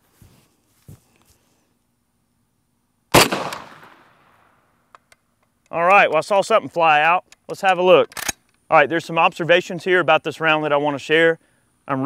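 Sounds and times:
rifle shot with echo: 3.1s - 4.4s.

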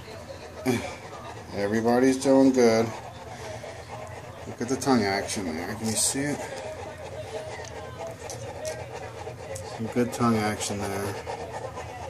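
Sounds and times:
puppies suckling: 0.0s - 12.0s.

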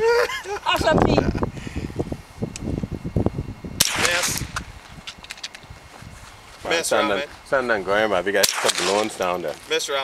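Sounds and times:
rifle shot: 3.8s - 4.7s, 8.4s - 9.3s.

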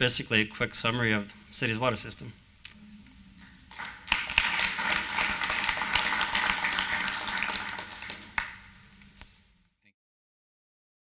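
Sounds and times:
audience applauding: 3.7s - 8.7s.

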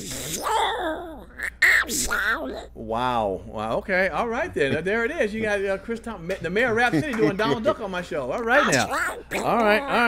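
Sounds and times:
man speaking: 2.8s - 10.0s
man doing duck voice impression: 8.4s - 10.0s.

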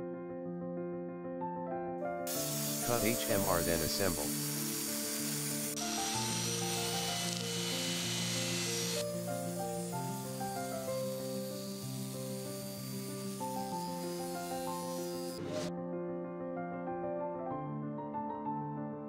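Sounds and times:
high-pitched hiss: 2.3s - 5.0s.

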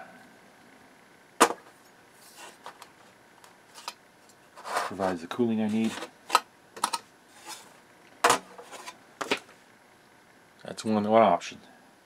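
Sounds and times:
brief metal scrape: 4.6s - 5.0s, 8.5s - 9.0s.

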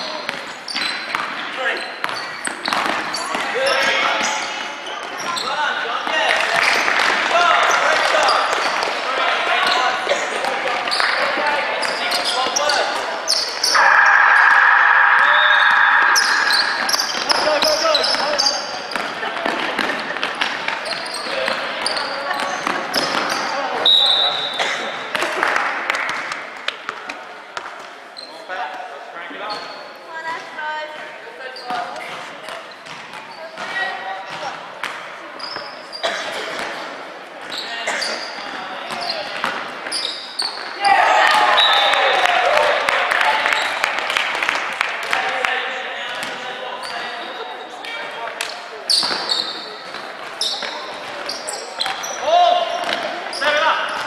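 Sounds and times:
sneakers squeaking: 0.0s - 6.8s, 7.6s - 8.9s, 9.6s - 25.1s, 31.4s - 34.5s, 35.2s - 36.8s, 37.4s - 40.9s, 46.2s - 47.8s, 48.4s - 54.0s
indistinct shouts: 13.7s - 18.0s.

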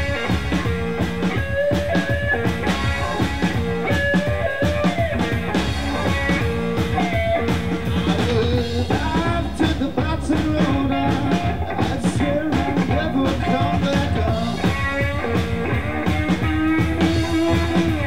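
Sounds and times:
drum kit steady beat: 0.0s - 18.0s
electric guitar bending notes: 0.0s - 18.0s.

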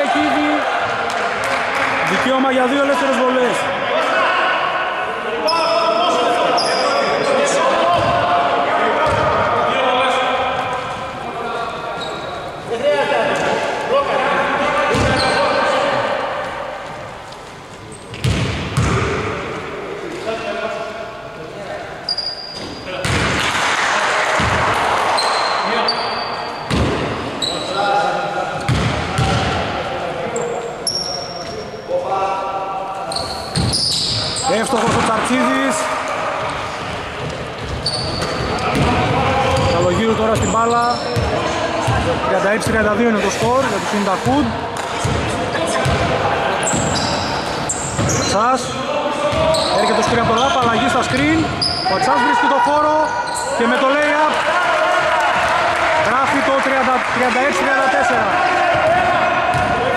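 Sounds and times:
players' voices: 0.0s - 59.9s
shoes squeaking on floor: 6.5s - 7.4s, 11.9s - 12.7s, 14.9s - 15.6s, 22.1s - 22.9s, 25.2s - 26.8s, 27.4s - 27.9s, 30.4s - 31.8s, 33.1s - 35.0s, 37.2s - 38.8s, 39.5s - 41.4s, 46.6s - 52.2s, 53.0s - 53.8s.

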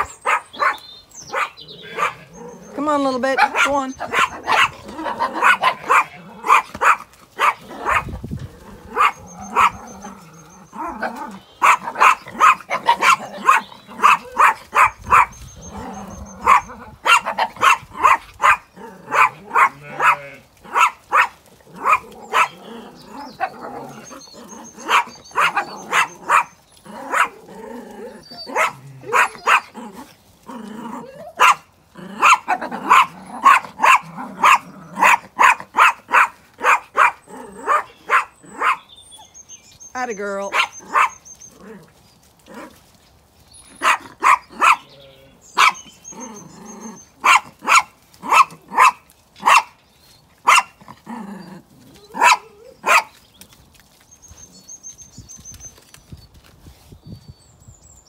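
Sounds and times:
small dog barking: 0.0s - 2.4s, 3.4s - 8.2s, 8.9s - 9.8s, 10.9s - 15.4s, 16.4s - 22.7s, 24.8s - 27.4s, 28.4s - 30.0s, 31.4s - 38.9s, 40.5s - 41.2s, 43.7s - 44.9s, 45.6s - 45.9s, 47.2s - 49.8s, 50.4s - 50.8s, 52.1s - 53.2s.

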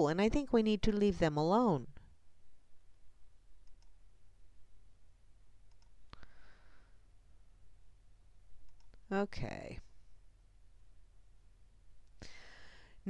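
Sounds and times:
low steady hum: 0.0s - 13.0s
computer mouse clicks: 3.6s - 4.0s, 5.6s - 6.2s, 8.6s - 9.0s.

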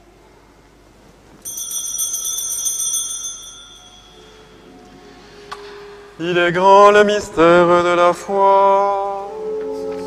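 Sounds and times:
bells jingling: 1.4s - 4.8s.

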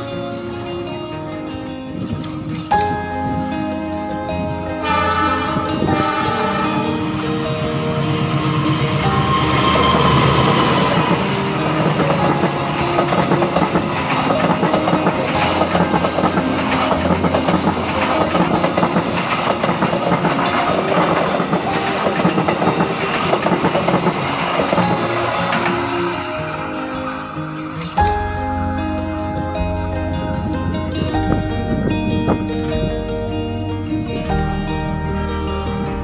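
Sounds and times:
diesel locomotive passing: 0.0s - 36.0s
train carriages rattling: 4.8s - 31.5s
wheels clicking over rail joints: 5.6s - 33.0s.

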